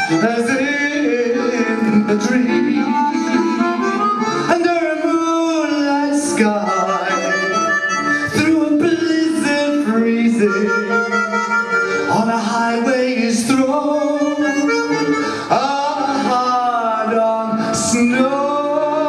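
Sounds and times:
instrumental backing: 0:00.0 - 0:19.0
man singing into microphone: 0:00.0 - 0:19.0.

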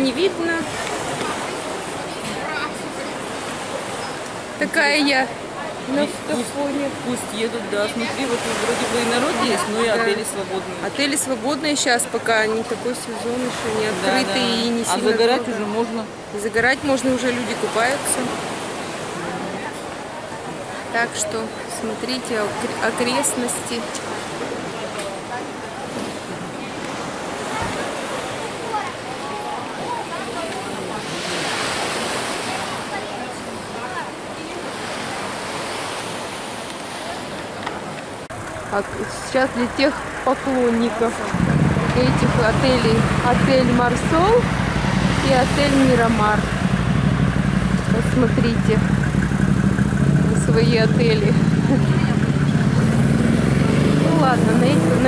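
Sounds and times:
sea surf: 0:00.0 - 0:55.0
vehicle engine idling: 0:38.2 - 0:55.0
wind on microphone: 0:41.1 - 0:55.0.

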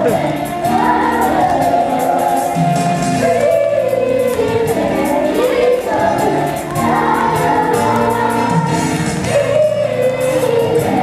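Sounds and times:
chorus singing: 0:00.0 - 0:11.0
musical accompaniment: 0:00.0 - 0:11.0.

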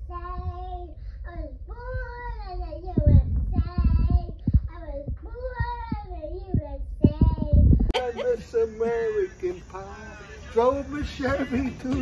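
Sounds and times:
child singing: 0:00.0 - 0:07.8
dull low thumps: 0:00.0 - 0:08.0.

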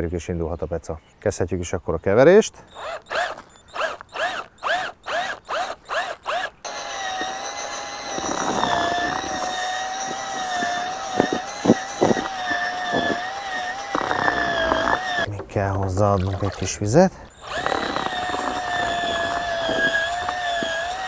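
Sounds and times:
electric drill whining: 0:02.6 - 0:15.3, 0:17.2 - 0:21.0.

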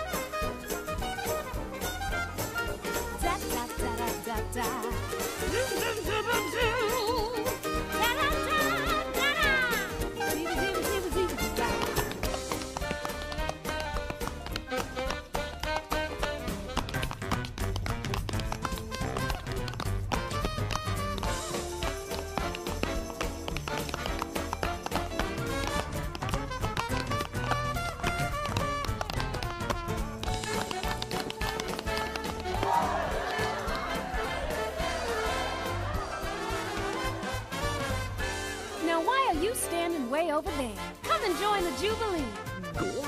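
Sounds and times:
up-tempo jazz band: 0:00.0 - 0:43.0
tap dancing clicks: 0:11.6 - 0:32.8.

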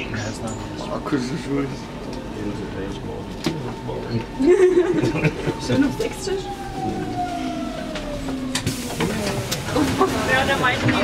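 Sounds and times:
train rumble: 0:00.0 - 0:11.0
electric train motors whining: 0:03.2 - 0:11.0.

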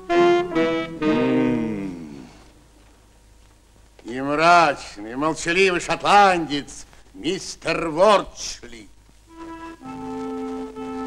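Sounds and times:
wind instrument playing held notes: 0:00.0 - 0:02.3, 0:09.3 - 0:11.0.

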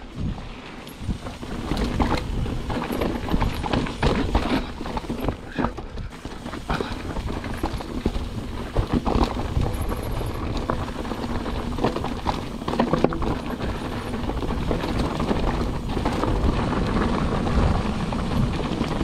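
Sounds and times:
bike knocking and rattling: 0:00.0 - 0:19.0
wind rumble on microphone: 0:00.0 - 0:19.0
tyres crunching over stones: 0:00.9 - 0:19.0.

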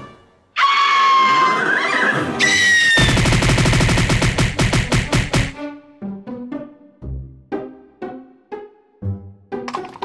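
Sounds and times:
music: 0:00.0 - 0:00.6, 0:01.8 - 0:10.0.

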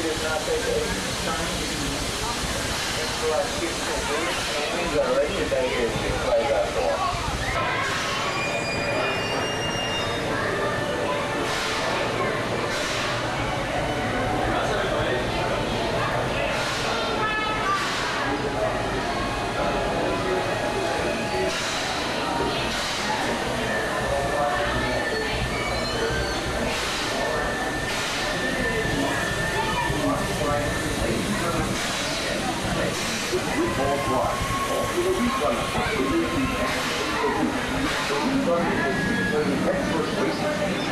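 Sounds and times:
crowd murmuring: 0:00.0 - 0:40.9
people talking: 0:00.0 - 0:40.9
steady noisy hiss: 0:00.0 - 0:40.9.

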